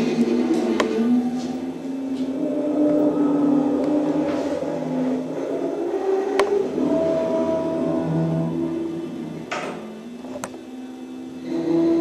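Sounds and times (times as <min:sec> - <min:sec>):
string quartet long held notes: 0:00.0 - 0:09.5.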